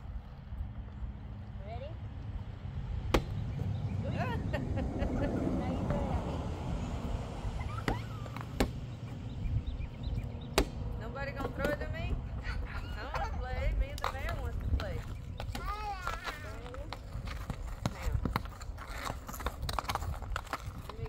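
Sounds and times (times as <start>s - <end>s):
wind rumble on microphone: 0.0s - 21.0s
rubber ball bouncing on asphalt: 3.0s - 3.7s, 7.7s - 9.2s, 10.3s - 12.4s, 13.7s - 21.0s
voices: 3.8s - 8.6s, 10.9s - 18.4s.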